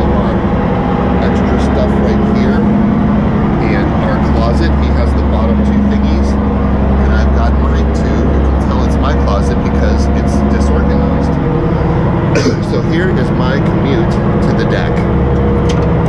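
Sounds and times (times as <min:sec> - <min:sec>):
low diesel engine drone: 0:00.0 - 0:16.0.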